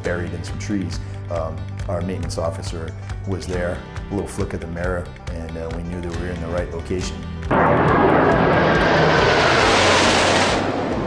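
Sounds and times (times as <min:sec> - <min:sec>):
jets flying past overhead: 0:07.5 - 0:11.0.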